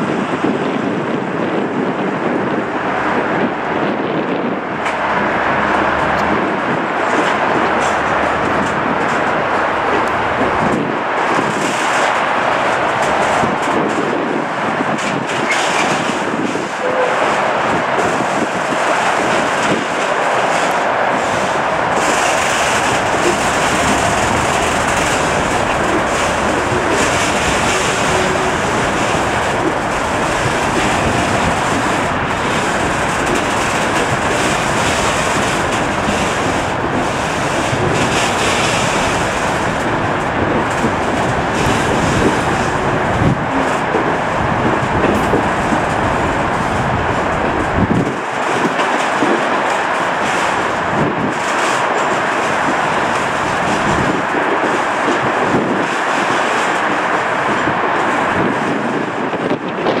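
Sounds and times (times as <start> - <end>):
freight train rolling past: 0.0 - 60.0
wheels clicking over rail joints: 0.0 - 60.0.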